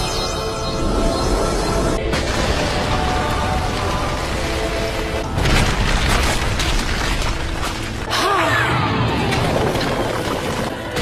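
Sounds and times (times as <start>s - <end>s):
crashing rumble of impacts: 2.1s - 8.1s.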